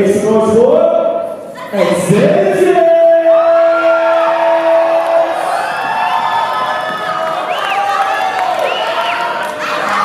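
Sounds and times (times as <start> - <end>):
audience cheering and whooping: 3.3 - 10.0.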